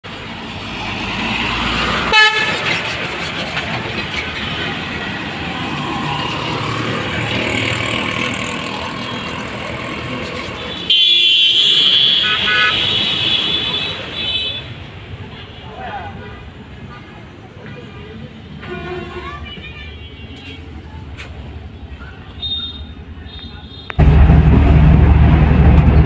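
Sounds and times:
busy road traffic: 0.0 - 26.0
vehicle horns honking: 2.1 - 2.6, 10.7 - 14.8.

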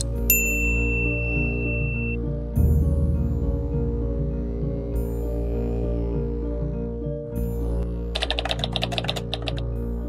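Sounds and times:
background music with sustained chords: 0.0 - 10.0
keyboard typing clicks: 8.2 - 9.7.

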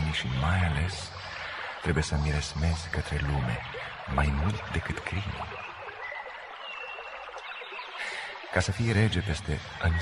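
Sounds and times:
stream water flowing: 0.0 - 10.0.

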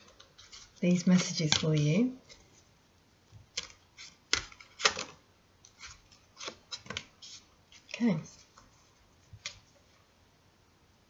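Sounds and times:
cards snapping and tapping: 3.5 - 5.2.

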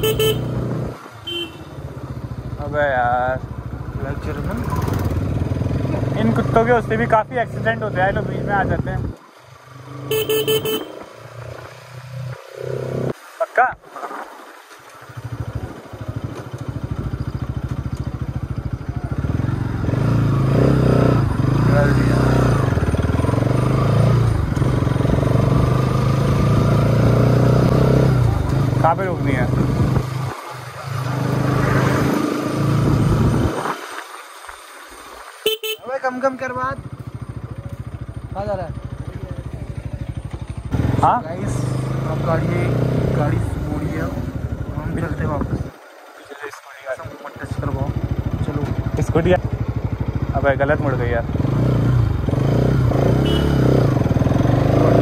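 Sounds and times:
horn beeping: 0.0 - 1.9, 10.0 - 11.1, 35.4 - 36.0, 53.2 - 53.7
motorcycle engine running: 0.0 - 12.3, 15.1 - 33.6, 35.5 - 46.0, 47.0 - 55.0.

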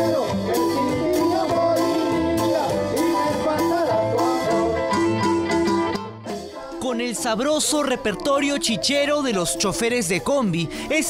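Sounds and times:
band playing cumbia: 0.0 - 11.0.

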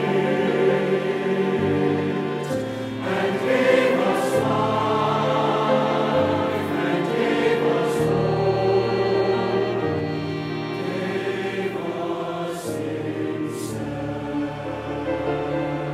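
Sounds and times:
mixed choir singing: 0.0 - 15.9
string ensemble: 0.0 - 15.9.

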